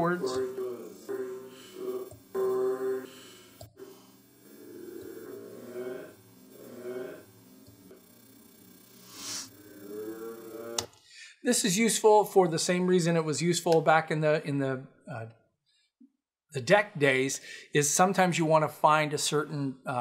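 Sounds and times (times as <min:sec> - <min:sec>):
slowed reversed man's speech: 0:00.0 - 0:03.1.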